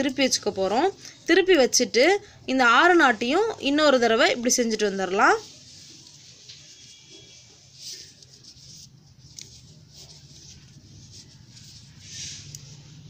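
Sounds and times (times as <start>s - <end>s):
cloth strips rustling: 0.0s - 13.0s.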